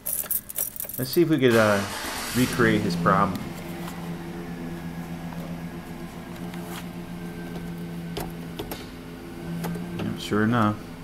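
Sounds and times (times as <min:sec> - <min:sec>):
low hum in truck cab: 0:00.0 - 0:11.0.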